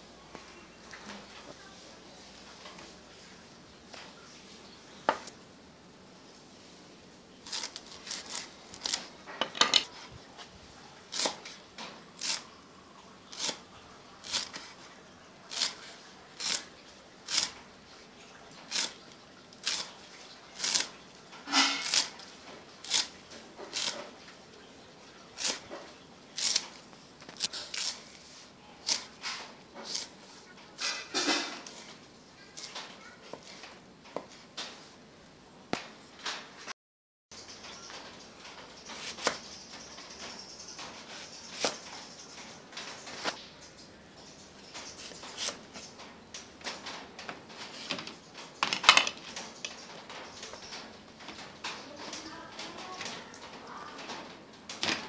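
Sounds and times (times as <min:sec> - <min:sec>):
knife chopping leaves on wooden board: 0:11.1 - 0:11.6, 0:12.2 - 0:12.4, 0:14.2 - 0:14.8, 0:15.5 - 0:15.8, 0:16.4 - 0:16.7, 0:17.3 - 0:17.6, 0:18.7 - 0:19.0, 0:19.6 - 0:19.9, 0:20.6 - 0:20.9, 0:21.5 - 0:22.2, 0:22.8 - 0:24.2, 0:25.4 - 0:28.2, 0:28.8 - 0:30.1, 0:38.9 - 0:39.5, 0:40.2 - 0:42.0.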